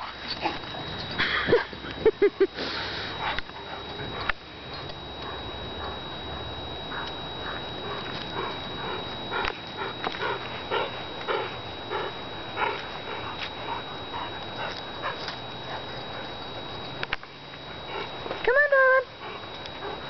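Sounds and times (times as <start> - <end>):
dogs grunting: 0.0 - 17.0, 17.6 - 18.4, 19.1 - 20.0.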